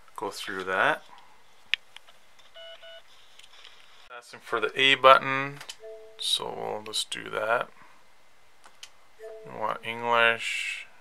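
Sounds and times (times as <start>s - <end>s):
faint electronic beeps: 5.7s - 6.6s, 9.2s - 10.2s.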